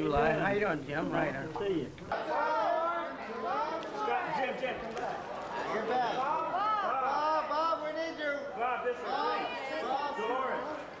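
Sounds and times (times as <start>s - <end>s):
indistinct chatter of people: 0.0s - 11.0s.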